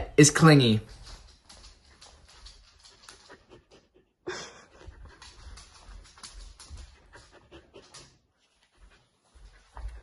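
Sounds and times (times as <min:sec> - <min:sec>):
dog panting: 0:00.9 - 0:10.0.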